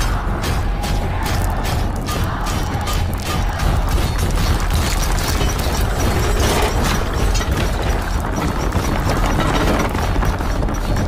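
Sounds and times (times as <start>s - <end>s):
rhythmic metallic clatter: 0.0s - 11.0s.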